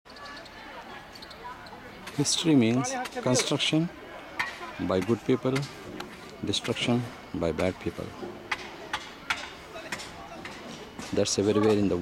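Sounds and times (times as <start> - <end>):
distant voices: 0.1 - 12.0.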